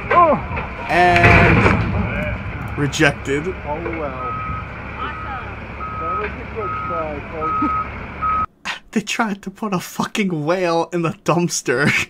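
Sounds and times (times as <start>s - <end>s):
low engine rumble: 0.0s - 8.5s
reversing alarm beeps: 4.1s - 8.5s.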